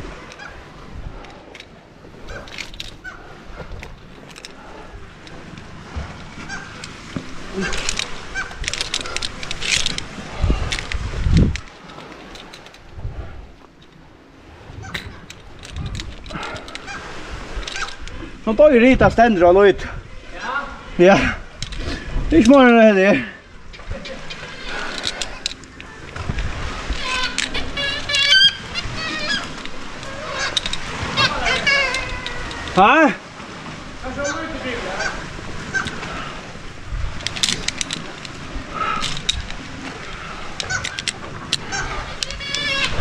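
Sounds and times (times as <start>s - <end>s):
faint seabird calls: 0.0s - 0.8s, 2.1s - 3.7s, 4.5s - 9.5s, 14.7s - 15.4s, 16.3s - 18.0s, 23.8s - 33.0s, 34.0s - 36.6s, 38.6s - 43.0s
carabiners and rope clicking: 0.0s - 18.5s, 21.5s - 22.9s, 23.7s - 33.2s, 35.1s - 43.0s.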